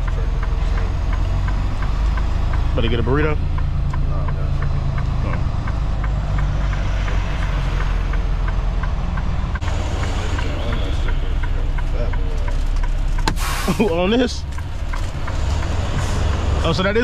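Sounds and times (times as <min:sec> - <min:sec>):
faint regular ticking: 0:00.0 - 0:13.3, 0:13.9 - 0:17.0
diesel truck engine rumbling: 0:00.0 - 0:17.0.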